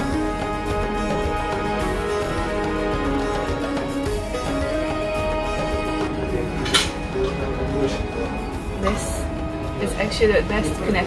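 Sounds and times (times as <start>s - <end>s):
background music: 0.0s - 11.0s
metal cutlery clinking on plate: 6.6s - 7.0s.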